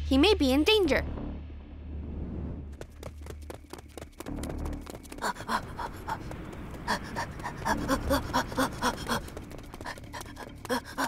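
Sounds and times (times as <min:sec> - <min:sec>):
cartoon character panting: 0:05.2 - 0:11.0.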